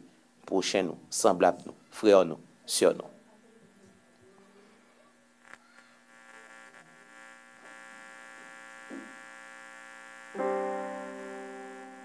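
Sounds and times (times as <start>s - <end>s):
electric keyboard chords: 10.3s - 12.0s.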